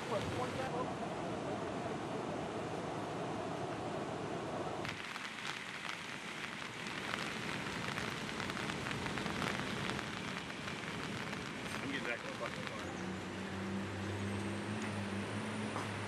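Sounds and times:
water rushing: 0:00.0 - 0:14.2
crackling ticks and patter: 0:04.8 - 0:13.3.

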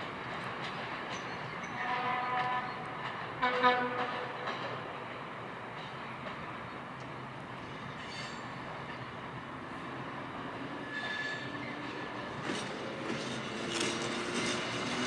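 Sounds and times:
train coaches rumbling on tracks: 0:00.0 - 0:15.0
high wheel squeal: 0:07.7 - 0:08.7, 0:10.6 - 0:15.0.

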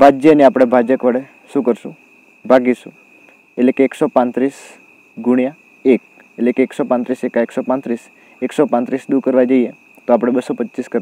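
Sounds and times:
man speaking: 0:00.0 - 0:03.0, 0:03.6 - 0:11.0
cricket trilling: 0:00.0 - 0:11.0.

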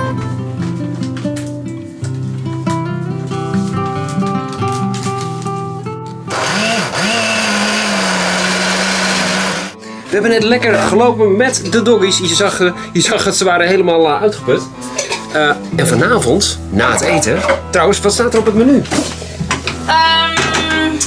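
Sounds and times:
background music melody: 0:00.0 - 0:21.0
blender motor running: 0:06.3 - 0:09.8.

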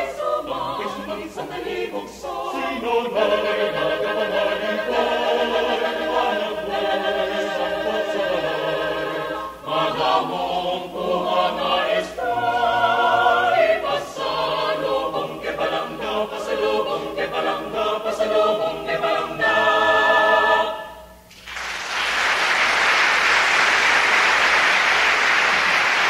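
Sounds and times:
a cappella choir singing: 0:00.0 - 0:21.3
audience applause: 0:21.3 - 0:26.0.

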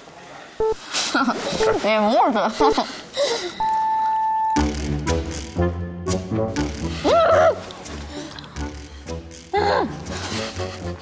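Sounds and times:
steady electronic beep: 0:00.6 - 0:00.8, 0:03.6 - 0:05.4
countdown sound effect: 0:03.6 - 0:11.0
background music with bass line: 0:04.6 - 0:11.0.

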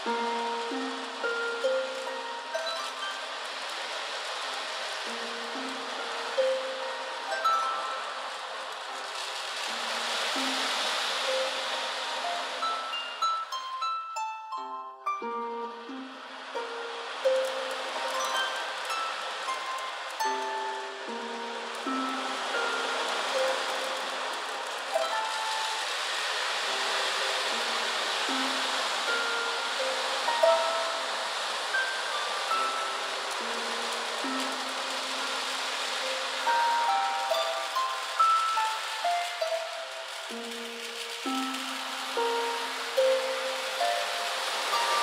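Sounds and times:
harp plucked slowly: 0:00.0 - 0:45.0.

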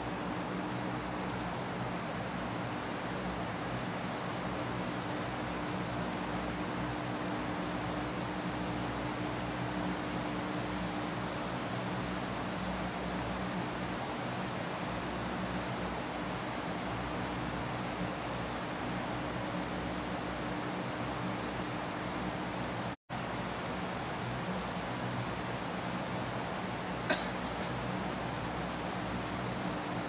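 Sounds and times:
electric fans hissing and humming: 0:00.0 - 0:30.0.

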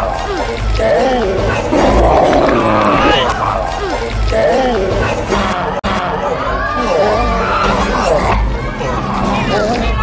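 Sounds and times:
creature growling and yelping: 0:01.5 - 0:03.7.

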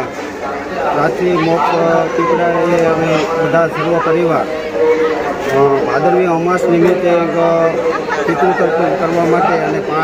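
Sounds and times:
man speaking: 0:00.8 - 0:04.9, 0:05.5 - 0:10.0.

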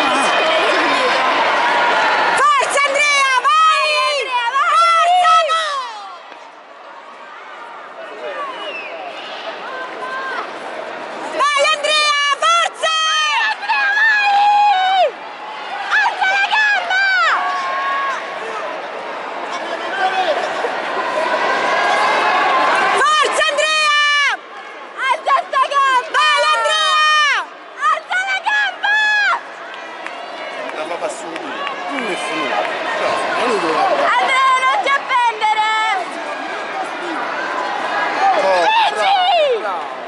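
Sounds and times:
crowd murmur in hall: 0:00.0 - 0:16.5, 0:27.2 - 0:40.0
high-pitched shouting: 0:33.5 - 0:36.1.

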